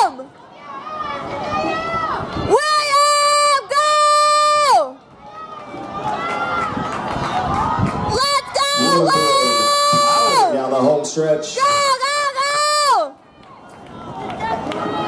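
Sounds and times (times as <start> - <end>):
crowd cheering: 0.0 - 15.0
person shouting encouragement: 8.3 - 10.6.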